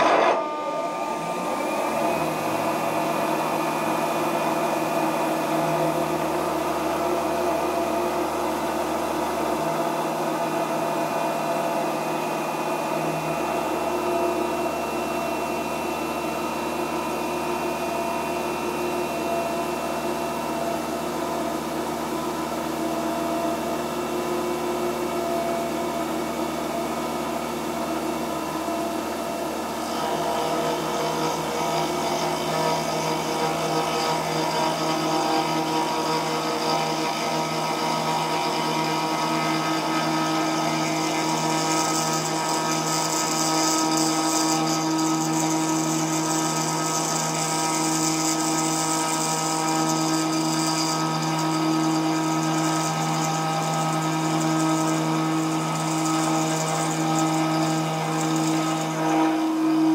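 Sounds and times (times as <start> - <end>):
high-pitched metal cutting noise: 0.0 - 6.4, 29.8 - 59.9
milling machine humming: 0.0 - 59.9.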